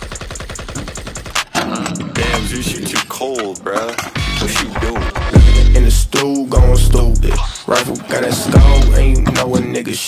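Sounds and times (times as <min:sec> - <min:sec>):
machine-gun fire: 0:00.0 - 0:01.5
hip-hop track: 0:00.0 - 0:10.0.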